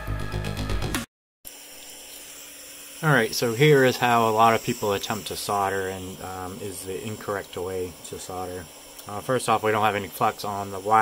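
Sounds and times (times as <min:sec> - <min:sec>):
soldering iron hissing: 0:01.5 - 0:11.0.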